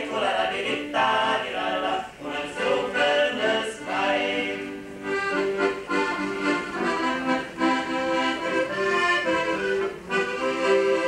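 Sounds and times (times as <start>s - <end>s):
male vocal quartet singing harmony: 0.0s - 5.2s.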